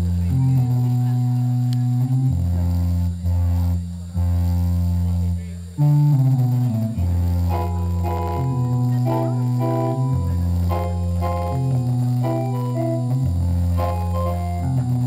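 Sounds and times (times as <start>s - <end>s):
bass guitar: 0.0s - 15.0s
guitar chords: 0.0s - 15.0s.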